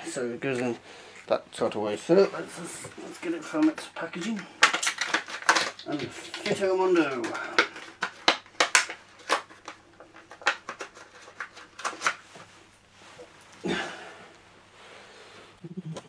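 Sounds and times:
packaging rustling: 2.3 - 12.5
plastic parts clicking and tapping: 3.5 - 12.2.

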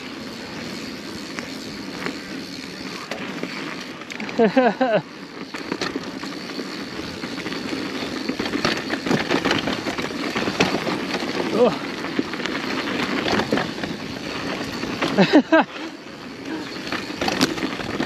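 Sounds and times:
bike clicks and rattles: 0.0 - 18.0
bike tyres on dirt trail: 0.0 - 18.0.

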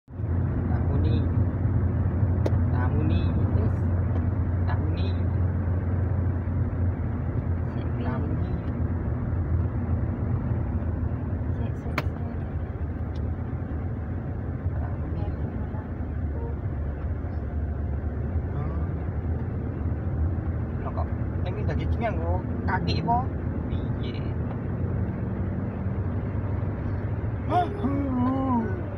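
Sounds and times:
car engine and tyres rumble: 0.0 - 28.9.

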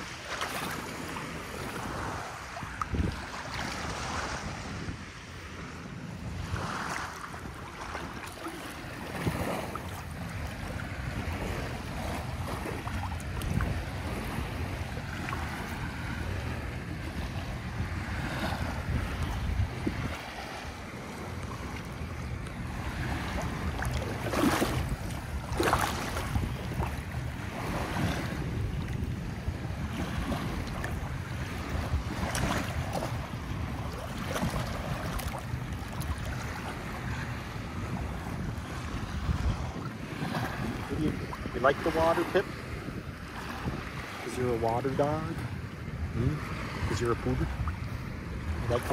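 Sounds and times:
ocean surf washing in: 0.0 - 48.9
wind buffeting microphone: 0.0 - 48.9.

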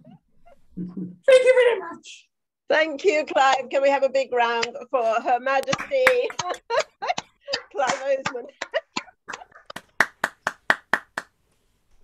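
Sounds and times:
person clapping hands: 5.7 - 6.7, 9.6 - 11.4.

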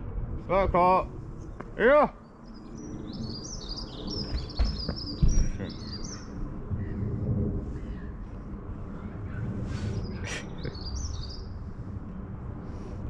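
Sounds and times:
low rumble on microphone: 0.0 - 13.0
songbird chirping: 1.4 - 7.1, 9.4 - 11.6
dull thumps: 4.3 - 5.6.

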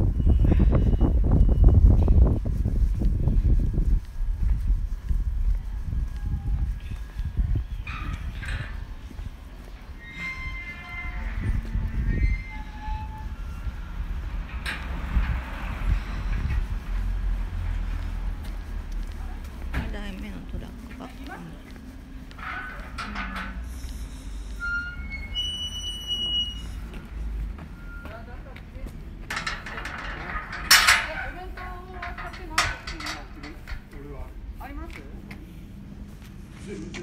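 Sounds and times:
heavy vehicle engine rumble: 0.0 - 37.0
metallic clatter of hard objects: 29.2 - 34.0.

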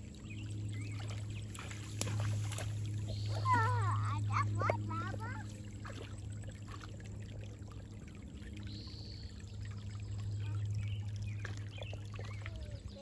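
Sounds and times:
creek water trickling over stones: 0.0 - 13.0
low hum: 0.0 - 13.0
small splashes: 0.0 - 13.0.

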